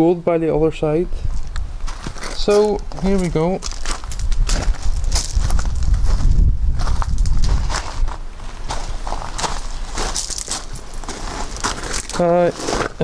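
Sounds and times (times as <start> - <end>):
footsteps on gravel: 1.3 - 13.0
low rumble: 3.1 - 12.1.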